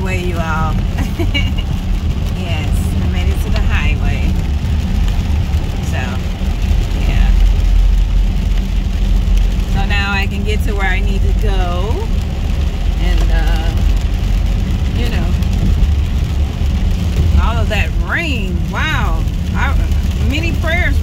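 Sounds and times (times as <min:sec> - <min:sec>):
car engine and tyres rumbling: 0:00.0 - 0:21.0
person speaking: 0:15.0 - 0:15.4, 0:17.4 - 0:21.0.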